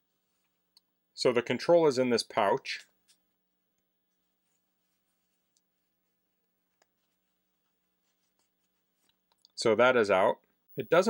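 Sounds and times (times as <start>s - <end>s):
faint fabric rustling: 0.0s - 0.7s, 2.9s - 9.3s.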